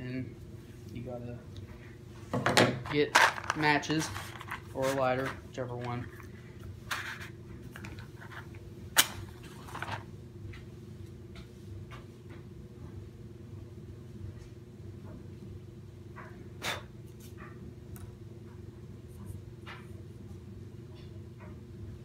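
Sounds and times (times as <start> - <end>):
steady low room hum: 0.0 - 22.0.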